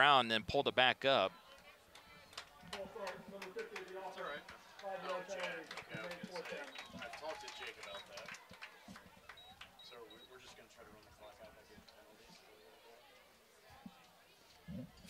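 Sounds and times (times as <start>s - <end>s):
indistinct chatter of people: 0.0s - 15.0s.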